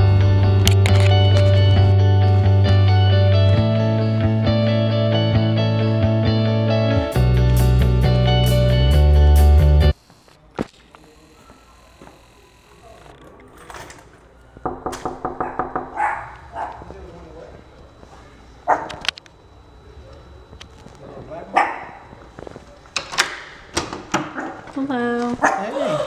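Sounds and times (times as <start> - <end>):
sharp knocks: 14.6 - 16.2
dog barking and yipping: 15.4 - 16.9, 18.7 - 19.0, 21.6 - 22.0, 24.3 - 24.7, 25.4 - 25.8.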